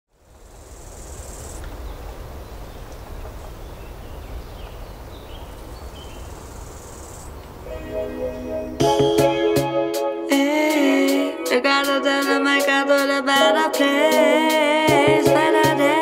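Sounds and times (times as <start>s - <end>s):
high insect buzz: 0.4s - 1.7s, 6.1s - 8.8s
music with steady notes: 7.7s - 16.0s.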